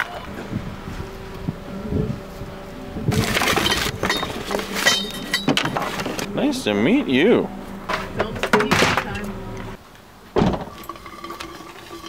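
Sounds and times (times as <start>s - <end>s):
clattering and scraping: 3.1s - 6.3s, 7.9s - 9.8s, 10.4s - 12.0s.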